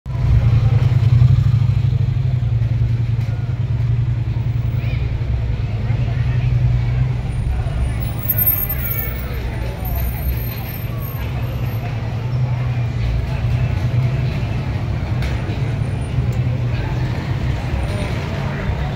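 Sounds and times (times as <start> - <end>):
faint voices of passers-by: 0.1 - 18.9
motorbike and van engines rumbling: 0.1 - 18.9.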